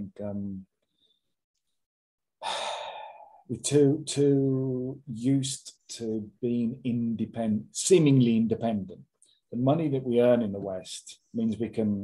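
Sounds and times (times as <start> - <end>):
man breathing: 2.4 - 3.5.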